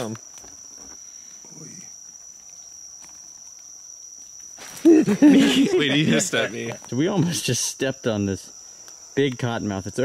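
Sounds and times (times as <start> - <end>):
crickets trilling: 0.0 - 10.0.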